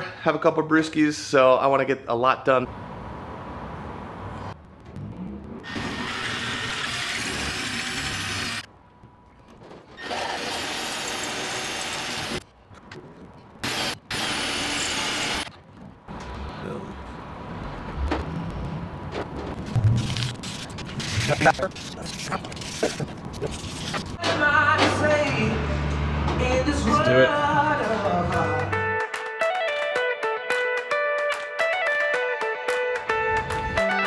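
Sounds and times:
cordless drill drilling metal: 5.7 - 8.7, 10.0 - 12.4.

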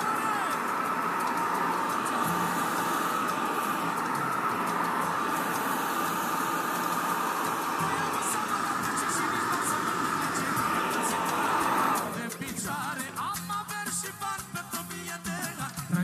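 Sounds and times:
hair dryer running: 0.0 - 13.3.

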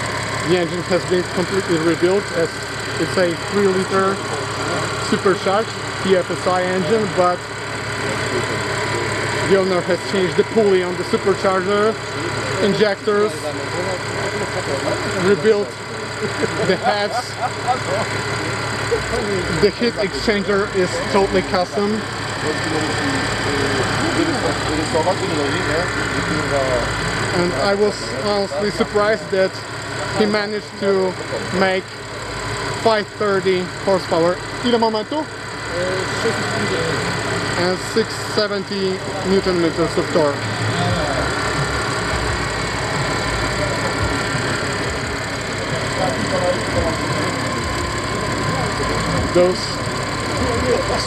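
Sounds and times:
car engine idling: 0.0 - 51.0
faint voices: 0.3 - 51.0
people talking: 0.4 - 51.0.

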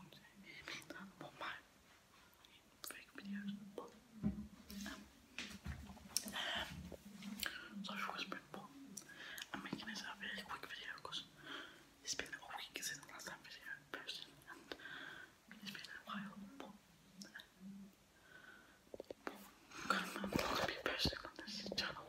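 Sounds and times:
man whispering: 0.0 - 1.7, 2.3 - 5.1, 6.2 - 14.8, 15.5 - 18.0, 19.0 - 22.0.

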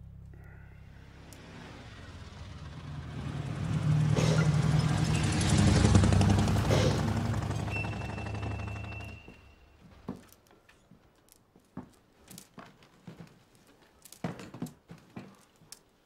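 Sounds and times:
small motorcycle passing by: 0.6 - 9.6.

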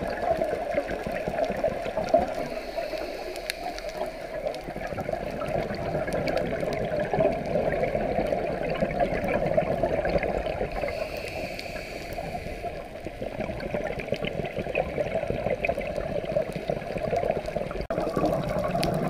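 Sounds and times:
faint underwater clicks: 0.0 - 19.0
muffled underwater rush: 0.0 - 19.0.

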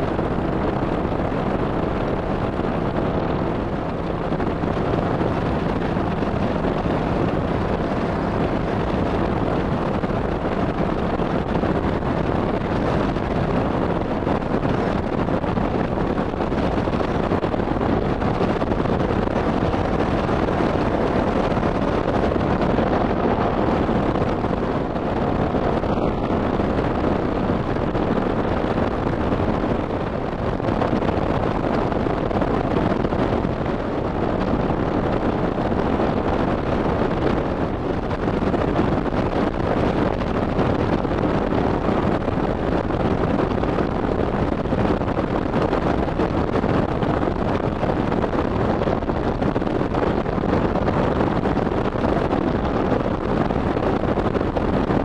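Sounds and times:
motorcycle engine running: 0.0 - 43.6
wind rush on microphone: 0.0 - 55.0.

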